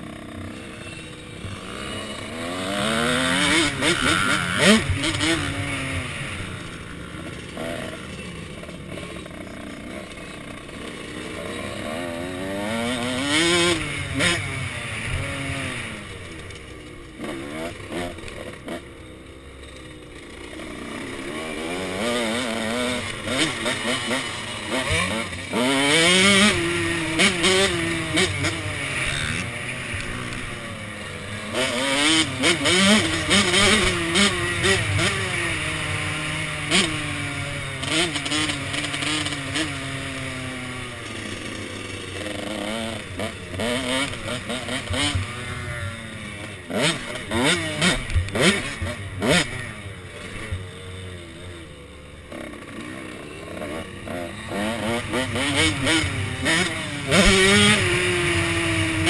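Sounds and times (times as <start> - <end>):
motocross bike engine revving: 0.0 - 59.0.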